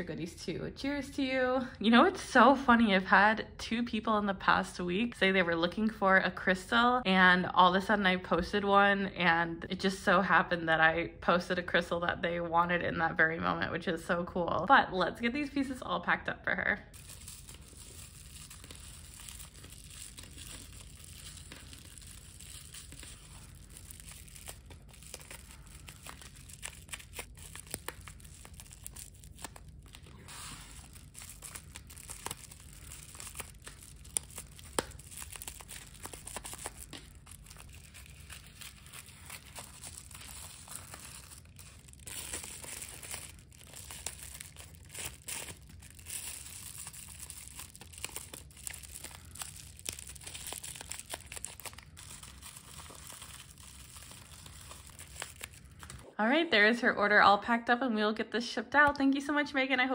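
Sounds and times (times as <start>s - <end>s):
bubble wrap crinkling: 16.9s - 56.1s.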